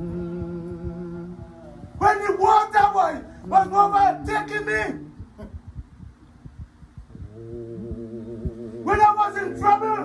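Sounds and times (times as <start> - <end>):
low thumps: 0.0 - 10.0
voices singing long notes: 0.0 - 10.0.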